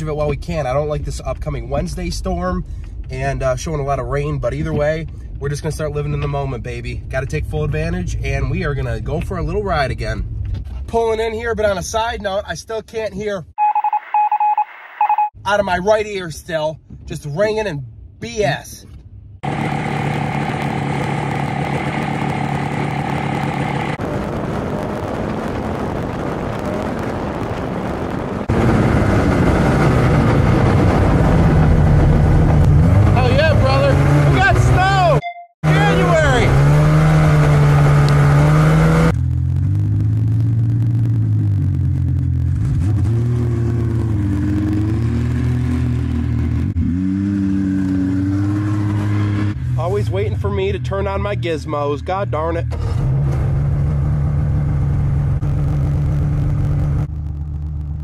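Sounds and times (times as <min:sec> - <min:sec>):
wind noise on microphone: 0:20.0 - 0:33.2
snowmobile engine revving: 0:28.4 - 0:39.1.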